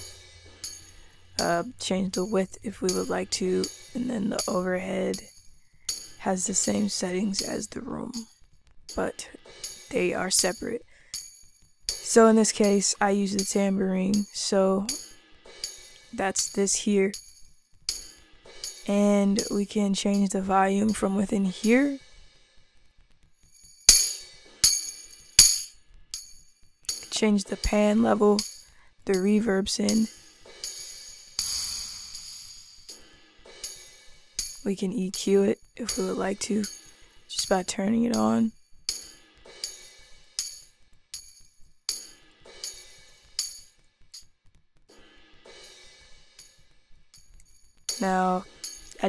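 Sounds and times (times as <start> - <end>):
tambourine hits: 0.0 - 7.6, 9.3 - 12.8, 14.9 - 18.9, 23.3 - 27.1, 28.4 - 28.9, 29.9 - 34.6, 35.6 - 37.3, 38.5 - 44.3, 44.9 - 49.0.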